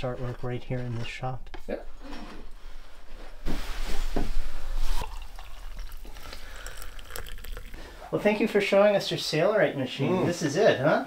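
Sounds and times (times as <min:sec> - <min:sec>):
coffee pouring into a mug: 0:04.8 - 0:08.5.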